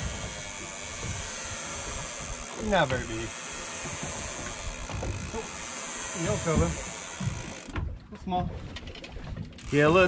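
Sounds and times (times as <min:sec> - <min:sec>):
wind and sea hiss: 0:00.0 - 0:07.7.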